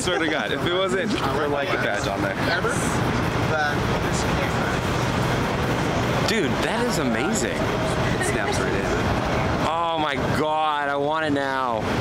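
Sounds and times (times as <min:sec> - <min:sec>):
faint voices: 0:00.0 - 0:11.8
passing cars rumble: 0:00.0 - 0:12.0.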